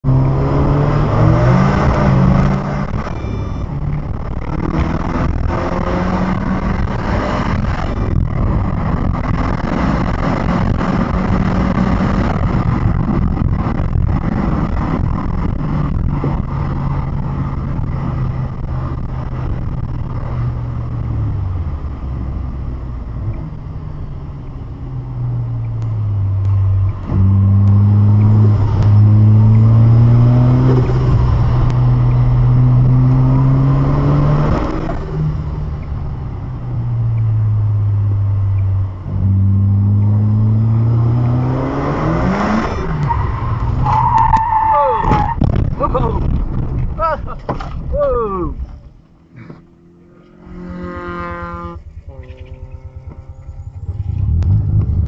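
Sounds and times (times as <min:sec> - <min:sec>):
car engine revving from cabin: 0:00.0 - 0:19.7, 0:25.3 - 0:44.6, 0:48.5 - 0:55.0.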